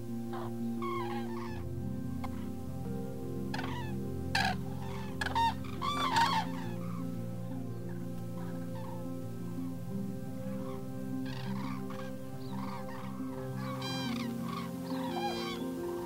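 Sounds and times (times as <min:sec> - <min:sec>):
cranes calling: 0:00.3 - 0:01.6, 0:03.5 - 0:07.1, 0:10.5 - 0:16.0.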